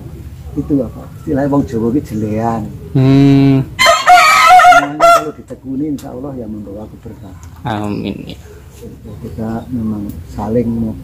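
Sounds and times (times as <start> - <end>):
rooster crowing: 3.8 - 5.5.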